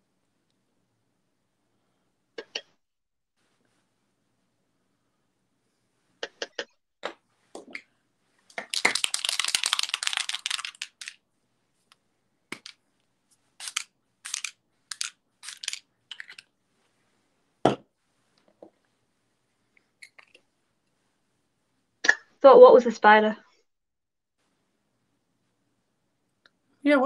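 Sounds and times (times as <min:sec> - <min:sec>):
small containers clicking and tapping: 0:08.5 - 0:11.2, 0:12.5 - 0:12.8, 0:13.6 - 0:16.5.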